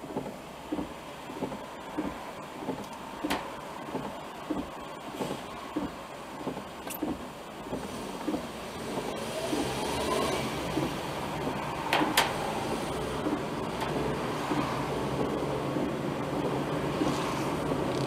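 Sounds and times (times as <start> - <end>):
car engine and road noise: 0.0 - 18.0.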